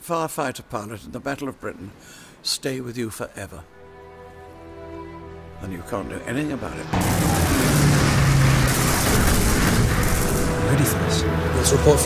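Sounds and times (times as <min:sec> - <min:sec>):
propeller plane flying past: 0:05.8 - 0:12.0.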